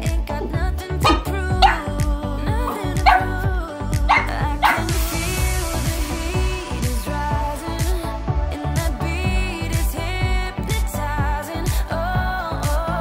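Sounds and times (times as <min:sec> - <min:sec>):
background music: 0:00.0 - 0:13.0
dog barking in sharp yips: 0:03.1 - 0:03.4, 0:04.1 - 0:04.9.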